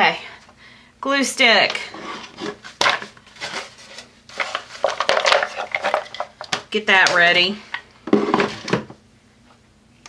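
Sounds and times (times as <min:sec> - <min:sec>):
hands handling craft materials: 0:01.6 - 0:07.5.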